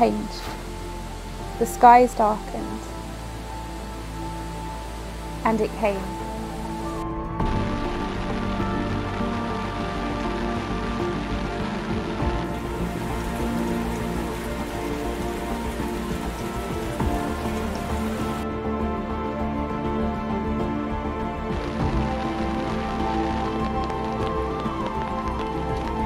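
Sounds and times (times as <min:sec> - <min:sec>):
background music with held notes: 0:00.0 - 0:26.0
steady rain falling: 0:00.0 - 0:26.0.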